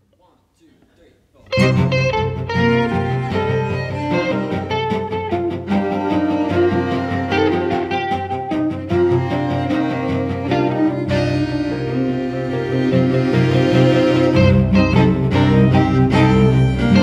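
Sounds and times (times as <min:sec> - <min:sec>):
electric guitar: 0:01.4 - 0:17.0
string quartet playing: 0:01.5 - 0:17.0.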